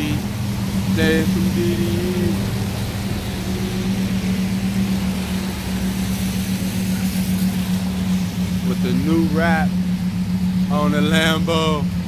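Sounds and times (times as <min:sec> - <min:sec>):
car engine idling: 0:00.0 - 0:12.0
traffic on wet pavement: 0:00.0 - 0:12.0.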